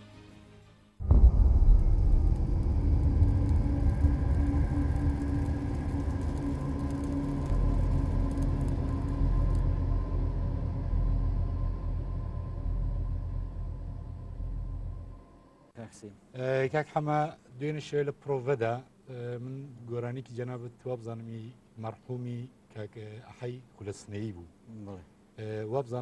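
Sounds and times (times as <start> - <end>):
deep steady rumble: 1.0 - 15.7.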